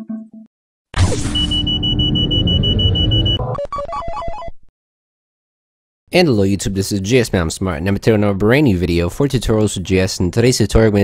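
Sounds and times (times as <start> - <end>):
high pulsing beep tone: 1.2 - 3.6.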